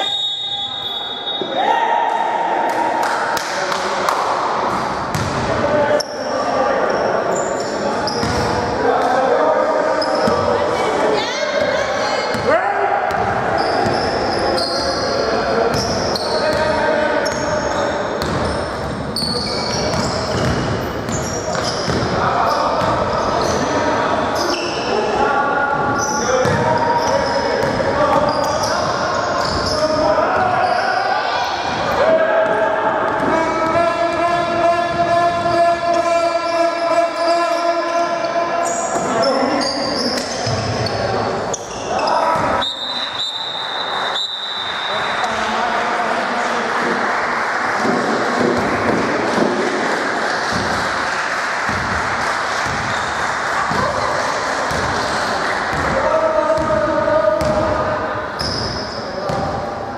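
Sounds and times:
basketball bouncing on hardwood: 5.1s - 5.4s.

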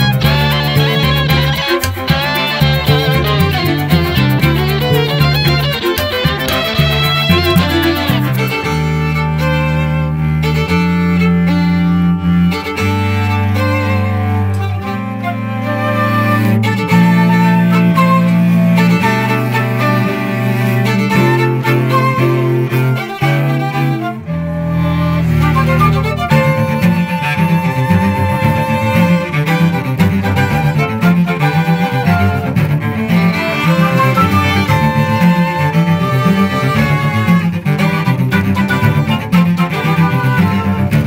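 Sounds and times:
string quartet playing: 0.0s - 41.0s.

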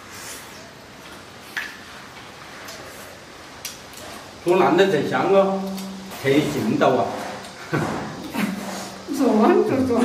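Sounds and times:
people eating quietly: 0.0s - 10.0s.

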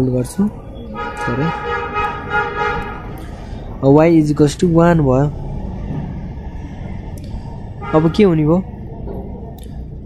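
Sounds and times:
horn long steady note: 0.8s - 3.1s, 7.7s - 8.4s.

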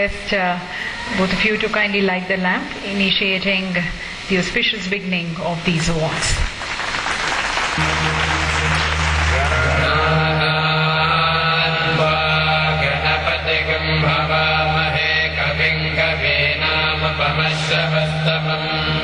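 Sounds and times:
devotional chant singing: 5.8s - 19.0s
steady low drone: 6.7s - 19.0s.

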